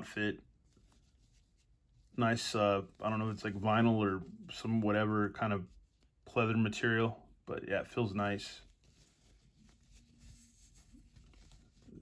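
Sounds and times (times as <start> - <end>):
fingers rubbing cloth costume: 8.6 - 12.0.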